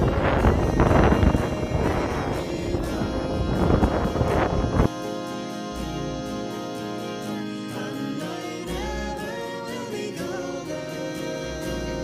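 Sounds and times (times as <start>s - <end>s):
wind buffeting microphone: 0.0s - 4.9s
background music: 0.0s - 12.0s.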